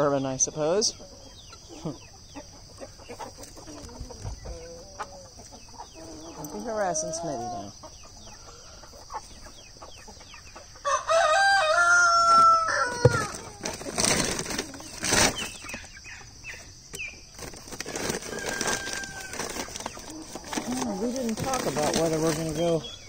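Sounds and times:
chickens clucking: 0:00.0 - 0:23.0
rooster crowing: 0:10.8 - 0:13.6, 0:17.9 - 0:20.7.

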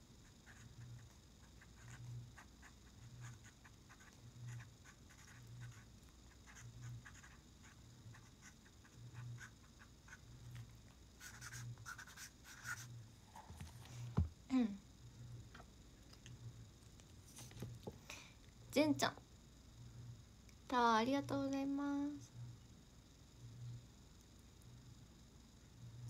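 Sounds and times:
marker scratching on paper: 0:00.4 - 0:10.2, 0:11.2 - 0:12.9.

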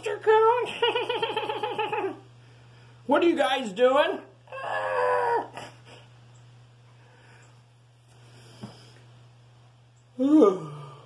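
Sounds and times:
faint room hum: 0:00.0 - 0:11.0
person groaning: 0:10.2 - 0:11.0.

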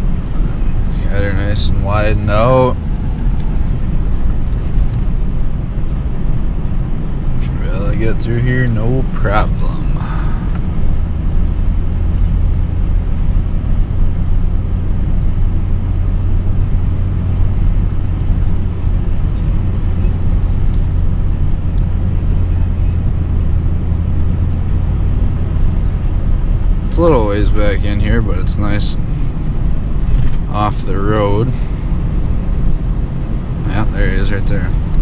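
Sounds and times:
truck engine and road rumble: 0:00.0 - 0:35.0.

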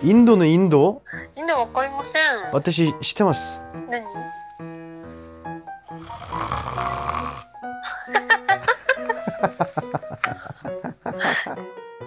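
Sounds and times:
light background music: 0:00.0 - 0:12.0
person snoring: 0:05.9 - 0:07.6.

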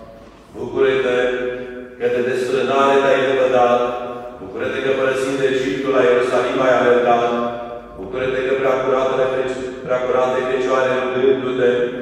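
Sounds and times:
person chanting: 0:00.0 - 0:12.0.

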